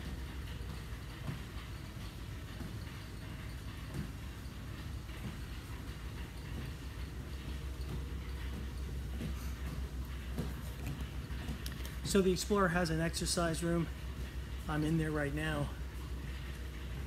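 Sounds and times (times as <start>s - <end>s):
low machinery drone: 0.0s - 17.0s.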